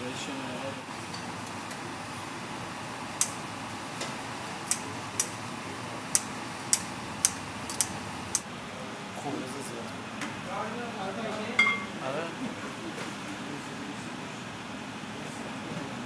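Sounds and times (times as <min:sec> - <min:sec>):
busy eatery room noise: 0:00.0 - 0:16.0
sharp light clicks: 0:04.7 - 0:05.4.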